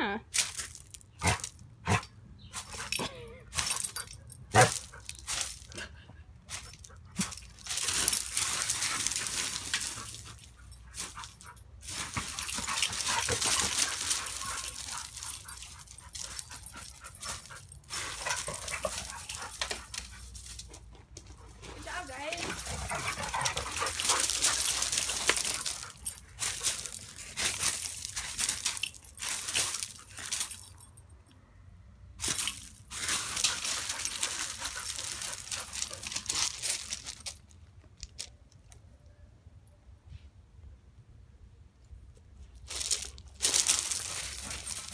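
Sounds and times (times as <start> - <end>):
collar clinks: 0.4 - 5.8, 6.5 - 20.7, 21.9 - 31.4, 32.2 - 37.6, 42.8 - 44.9
dogs playing sounds: 0.4 - 31.0, 32.2 - 37.5, 42.6 - 44.9
paws scuffing gravel: 6.5 - 30.6, 32.2 - 37.4, 42.7 - 44.9.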